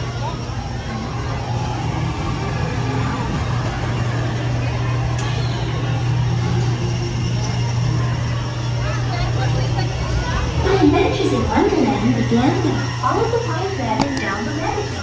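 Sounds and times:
ride car rolling along track: 0:00.0 - 0:15.0
voices in background: 0:00.0 - 0:15.0.

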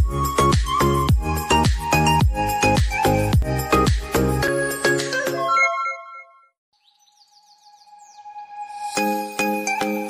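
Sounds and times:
background music: 0:00.0 - 0:05.9, 0:08.0 - 0:10.0
high bird-like chirps: 0:04.8 - 0:09.2.

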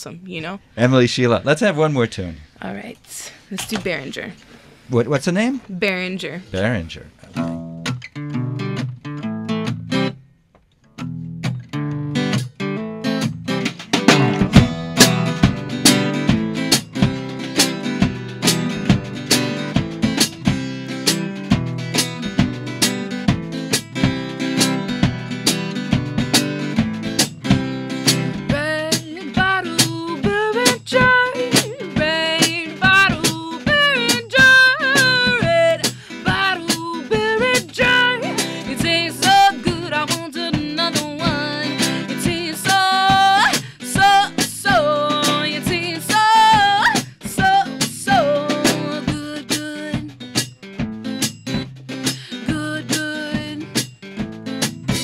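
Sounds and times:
strummed acoustic guitar: 0:06.6 - 0:55.0
drum kit beat: 0:11.4 - 0:55.0
woman singing: 0:28.4 - 0:50.2, 0:52.3 - 0:53.8.

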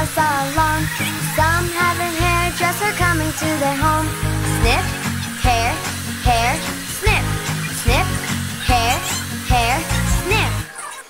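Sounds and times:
hair dryer blowing: 0:00.0 - 0:10.7
children's song with synth tones: 0:00.0 - 0:11.0.

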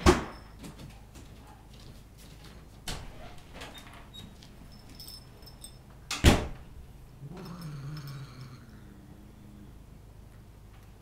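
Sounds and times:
cat growling: 0:07.1 - 0:10.1.

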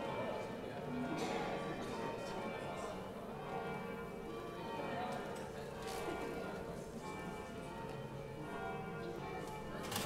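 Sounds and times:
church bells ringing: 0:03.3 - 0:05.0, 0:06.0 - 0:09.8.

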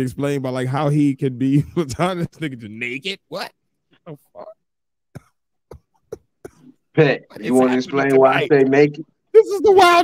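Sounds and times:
people talking: 0:00.0 - 0:03.5, 0:07.0 - 0:10.0.

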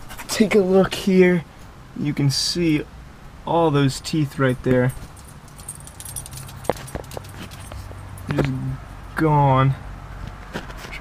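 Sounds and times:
low steady hum: 0:00.0 - 0:10.2.

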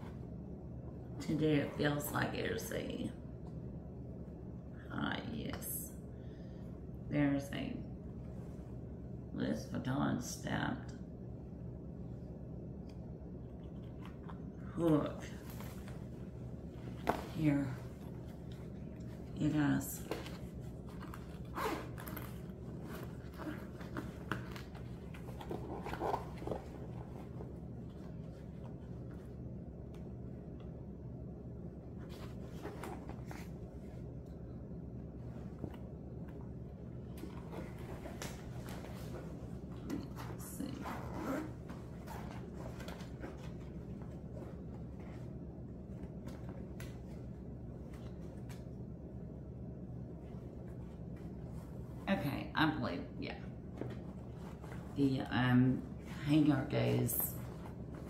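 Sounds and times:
low room hum: 0:00.0 - 0:58.0
zipper pulls: 0:21.0 - 0:27.1, 0:40.0 - 0:42.8.

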